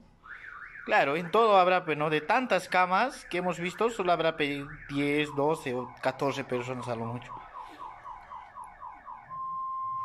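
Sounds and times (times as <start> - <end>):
alarm siren chirps and beep: 0.1 - 10.0.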